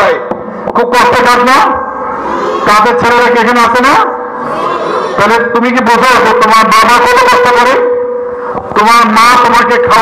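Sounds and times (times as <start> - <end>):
man speaking over loudspeaker: 0.0 - 2.0, 2.6 - 10.0.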